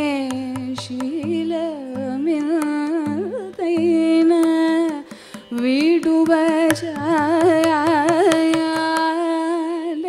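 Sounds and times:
hand drum strokes: 0:00.0 - 0:09.2
woman singing: 0:00.0 - 0:10.0.

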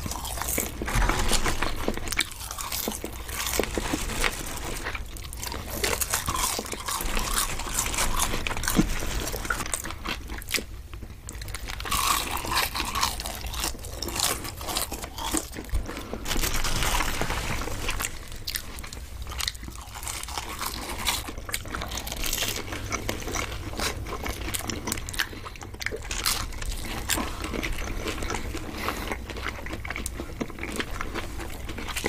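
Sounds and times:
chewing crunchy food: 0:00.0 - 0:32.0.

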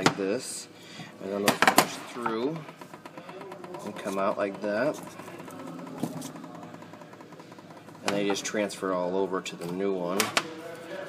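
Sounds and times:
low background hum: 0:00.0 - 0:11.0
rubber bushing worked from metal housing: 0:01.8 - 0:09.0.

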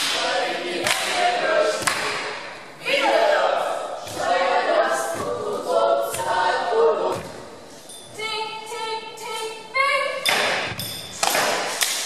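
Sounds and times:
voices singing a cappella: 0:00.0 - 0:10.6.

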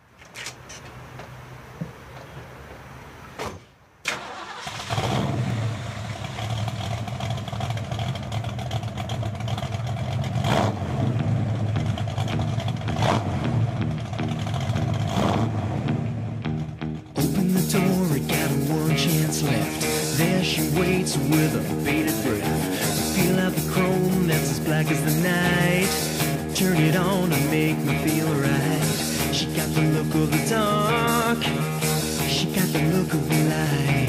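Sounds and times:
car engine starting and revving: 0:04.1 - 0:34.0
rock band with electric guitar: 0:11.0 - 0:34.0.

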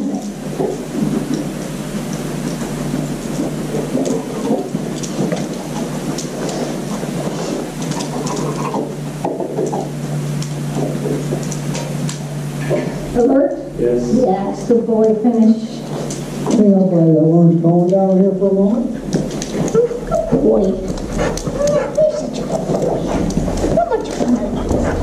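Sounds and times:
constant low hum: 0:00.0 - 0:25.0
rumbling room noise: 0:00.0 - 0:25.0.

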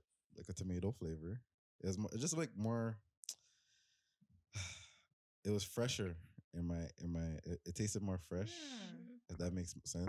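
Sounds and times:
sighing breath: 0:04.6 - 0:05.0.

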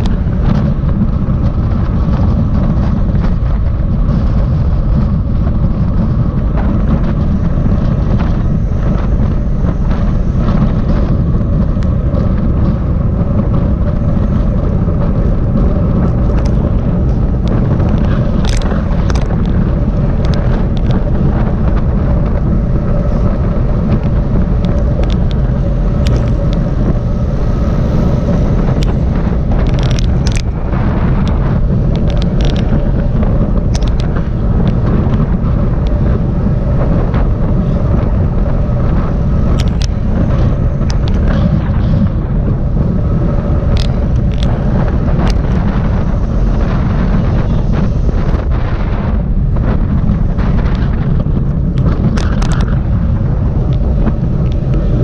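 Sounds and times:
wind rumble on microphone: 0:00.0 - 0:55.0.

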